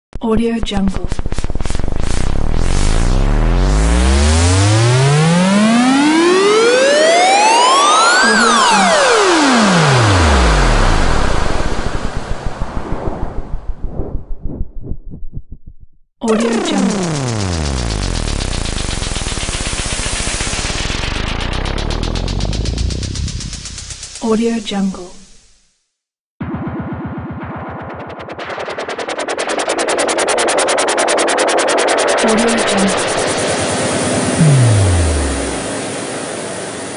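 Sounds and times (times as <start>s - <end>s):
rising buzzy synth sweep: 1.1s - 14.5s, 16.3s - 24.2s, 26.4s - 36.9s
low rumble: 10.4s - 16.0s, 16.6s - 24.7s, 26.4s - 29.9s, 31.7s - 36.4s.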